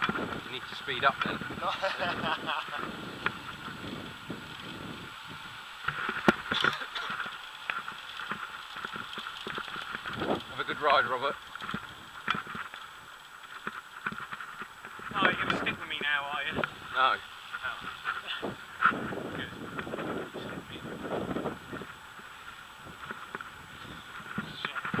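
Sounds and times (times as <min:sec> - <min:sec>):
bicycle rolling noise: 0:00.0 - 0:25.0
wind: 0:00.0 - 0:25.0.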